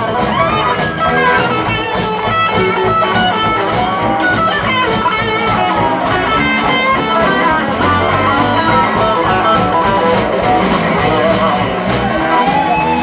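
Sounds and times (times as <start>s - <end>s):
bass and drum beat: 0.0s - 13.0s
electric guitar lead lines: 0.0s - 13.0s.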